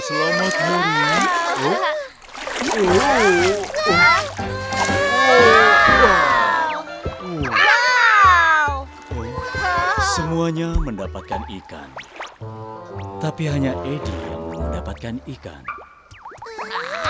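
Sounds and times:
water splashing: 0.0 - 17.0
cartoon characters shouting: 2.9 - 8.8
background music: 2.9 - 15.6.

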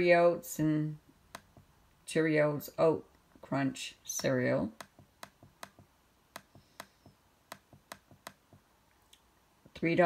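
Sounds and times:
laptop touchpad clicks: 4.2 - 8.6.

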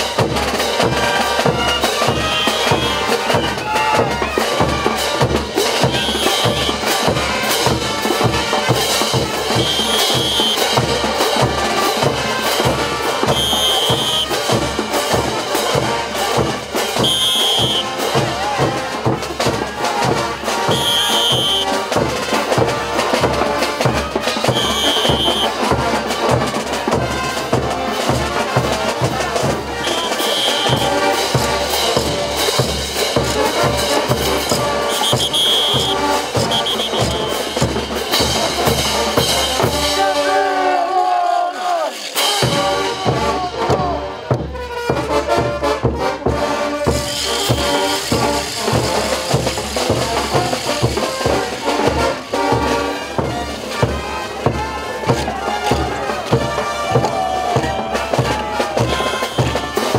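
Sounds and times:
bass drum and percussion beat: 0.0 - 40.2, 41.9 - 59.9
brass band playing: 0.0 - 59.9.

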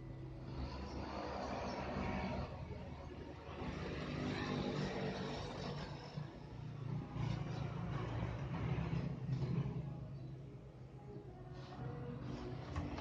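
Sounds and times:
vehicle engine running: 0.0 - 10.8.

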